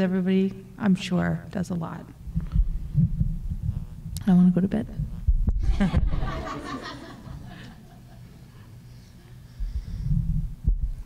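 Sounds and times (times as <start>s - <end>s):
people laughing: 5.6s - 8.4s.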